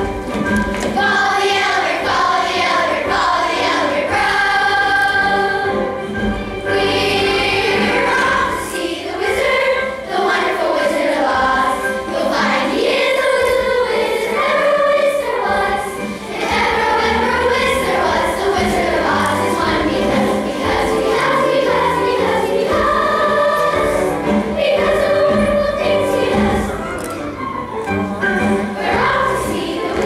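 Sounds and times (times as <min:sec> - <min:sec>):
children's chorus singing: 0:00.0 - 0:30.0.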